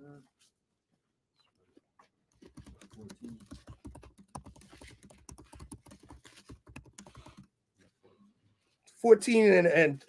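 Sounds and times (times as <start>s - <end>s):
typing on computer keyboard: 2.3s - 7.5s.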